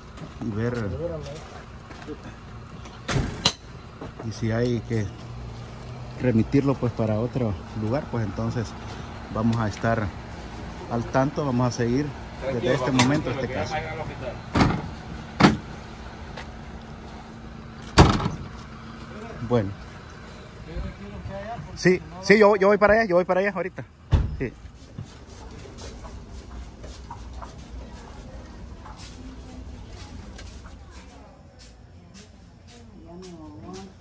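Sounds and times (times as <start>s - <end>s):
vehicle doors thudding shut: 3.0s - 3.7s, 14.5s - 15.8s, 17.8s - 18.6s, 24.0s - 24.6s.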